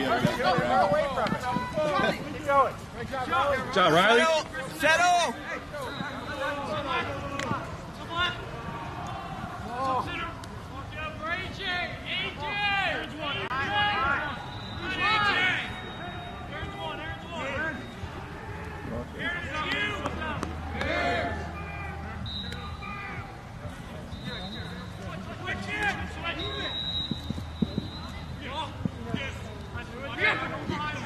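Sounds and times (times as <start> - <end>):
spectators talking and calling: 0.0 - 31.0.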